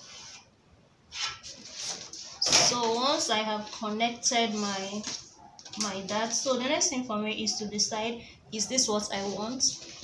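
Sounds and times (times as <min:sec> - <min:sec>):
ruler rubbing across paper: 0:00.0 - 0:00.5, 0:01.1 - 0:02.4.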